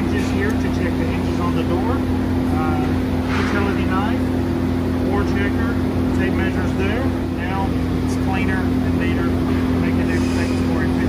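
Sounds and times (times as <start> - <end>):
shop machinery running: 0.0 - 11.0.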